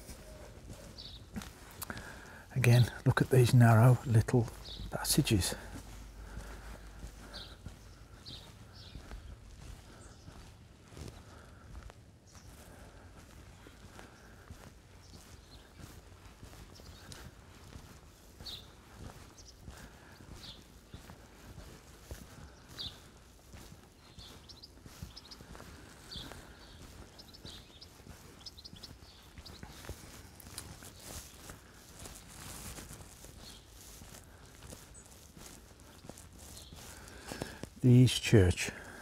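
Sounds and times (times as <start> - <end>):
faint footsteps on tarmac: 0.0 - 39.0.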